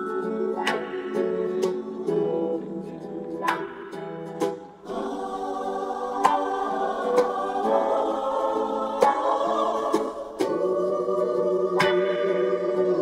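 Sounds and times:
choir singing held chords: 0:00.0 - 0:13.0.

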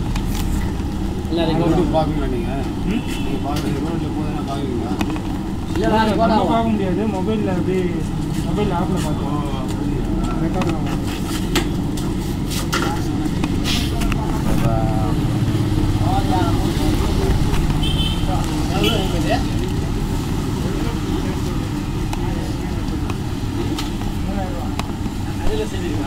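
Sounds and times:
traffic rumble: 0:00.0 - 0:26.0
voices talking: 0:00.6 - 0:26.0.

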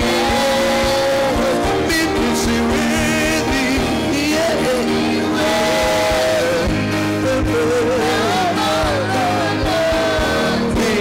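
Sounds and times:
worship band music: 0:00.0 - 0:11.0.

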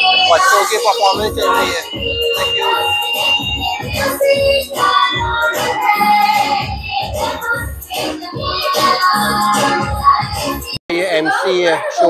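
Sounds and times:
dance song over loudspeakers: 0:00.0 - 0:12.0.

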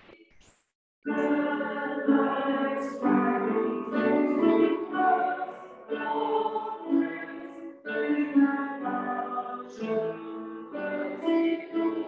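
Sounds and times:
group singing over video call: 0:01.1 - 0:12.0.

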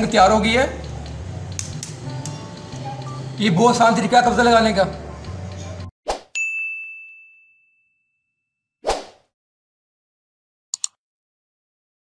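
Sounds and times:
bright bell-like ding: 0:06.4 - 0:08.4
quick whoosh: 0:08.8 - 0:09.2.

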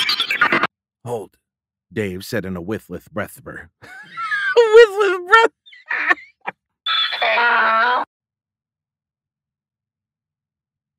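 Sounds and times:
man laughing: 0:03.8 - 0:06.5.

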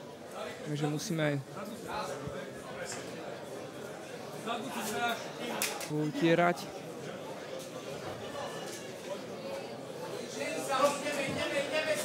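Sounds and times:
indoor hall background: 0:00.0 - 0:12.0.

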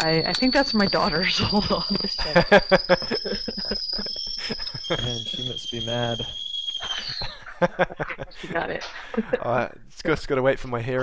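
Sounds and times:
kettle whistling: 0:00.0 - 0:09.4
people laughing: 0:01.0 - 0:05.6, 0:06.8 - 0:09.7.

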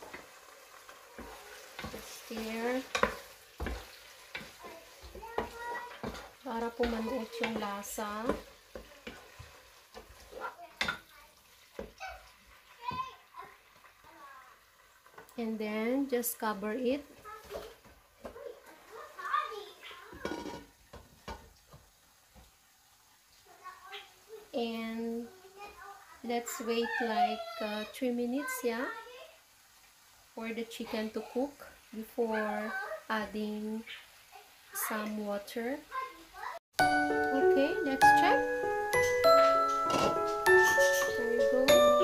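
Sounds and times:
spatula scraping frying pan: 0:00.0 - 0:11.1, 0:17.1 - 0:19.1, 0:20.0 - 0:21.5, 0:38.8 - 0:42.0
chicken sizzling: 0:00.0 - 0:42.0.

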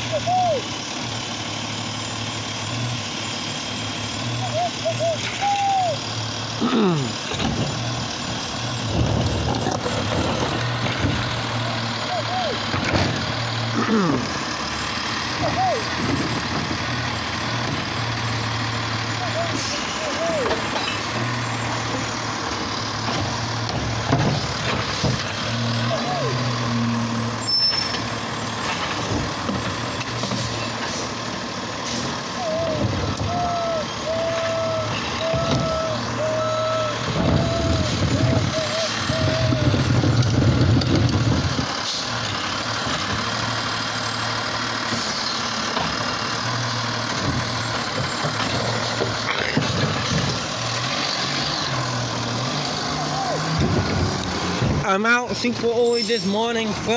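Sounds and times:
garbage truck diesel engine surging: 0:00.0 - 0:56.9.

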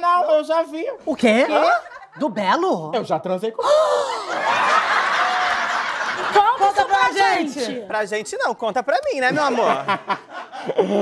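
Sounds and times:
audience laughing: 0:04.2 - 0:07.0.

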